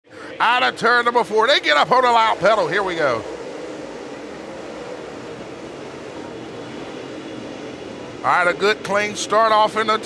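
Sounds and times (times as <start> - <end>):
race car engines roaring: 0.1 - 10.0.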